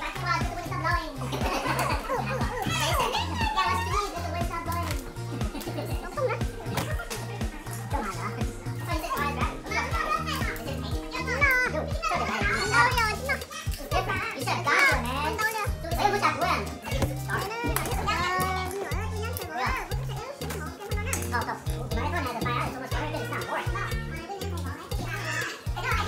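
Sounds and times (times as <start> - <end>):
background music with bass beat: 0.0 - 26.0
children and adults chattering: 0.0 - 26.0.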